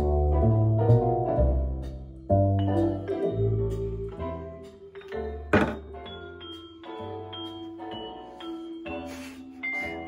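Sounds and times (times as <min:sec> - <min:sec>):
music with held notes and bass: 0:00.0 - 0:10.0
sharp thunk: 0:05.5 - 0:05.8.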